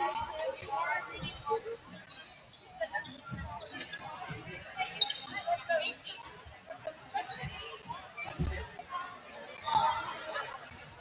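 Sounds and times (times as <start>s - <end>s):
sneaker squeaks: 0.0s - 8.8s, 9.6s - 11.0s.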